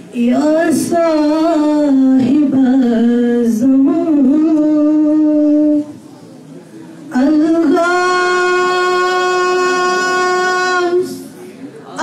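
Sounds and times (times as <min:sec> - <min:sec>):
girl singing long note: 0:07.2 - 0:11.2.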